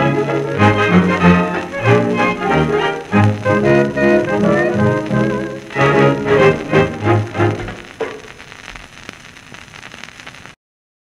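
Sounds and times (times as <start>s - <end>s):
record crackles and clicks: 0.0s - 10.6s
record surface hiss: 0.0s - 10.6s.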